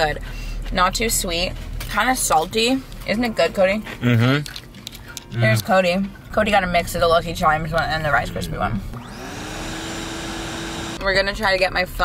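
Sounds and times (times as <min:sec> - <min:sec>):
motor whine: 0:08.8 - 0:11.0.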